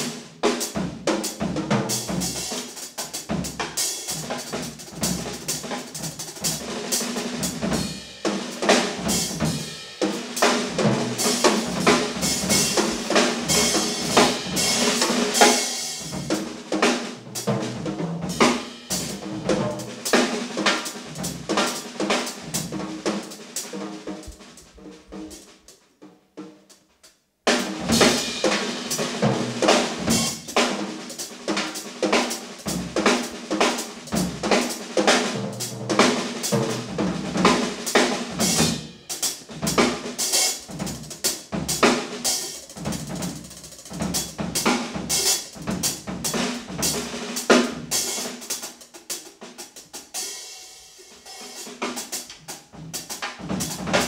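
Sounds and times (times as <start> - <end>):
drum and cymbal strokes: 0.0 - 25.8, 27.5 - 54.0
jazz band playing: 10.4 - 25.7, 27.5 - 49.2.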